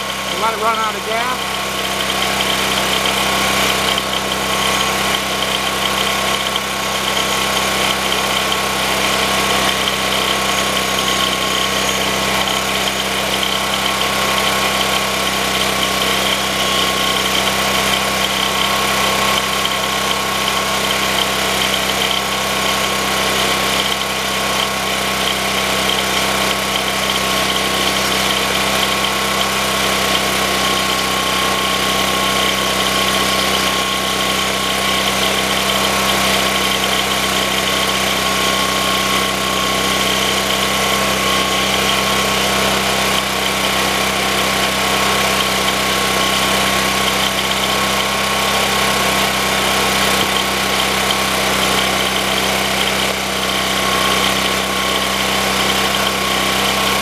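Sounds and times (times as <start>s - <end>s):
generator engine running: 0.0s - 57.0s.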